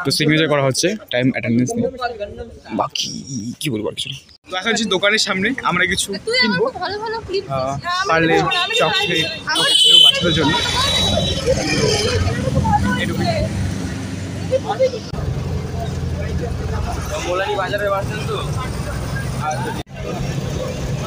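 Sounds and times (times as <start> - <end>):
people talking: 0.0 - 13.6, 14.4 - 21.0
roadside traffic rumble: 4.5 - 21.0
bus engine from inside: 10.4 - 21.0.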